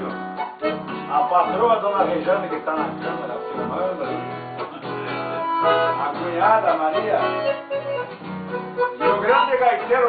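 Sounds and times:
accordion holding long notes: 0:00.0 - 0:10.0
acoustic guitar: 0:00.0 - 0:10.0.

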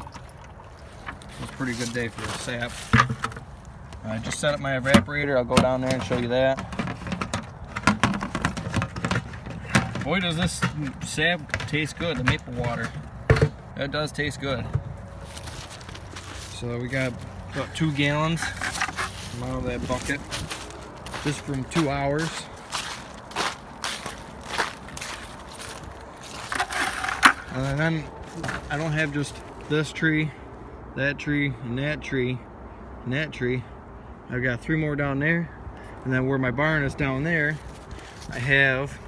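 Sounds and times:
metal bucket clicks and knocks: 0:02.8 - 0:03.4, 0:04.3 - 0:13.6
footsteps crunching in snow: 0:15.1 - 0:29.6.

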